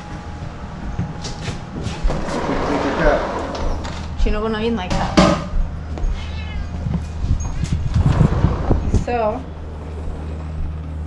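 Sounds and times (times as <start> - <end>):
steady low rumble: 0.0 - 11.0
cat meowing: 6.0 - 7.1.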